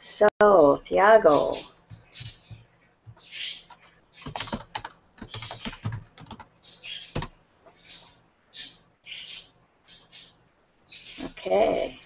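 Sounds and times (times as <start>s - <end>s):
computer keyboard typing: 1.9s - 6.5s, 7.1s - 7.4s.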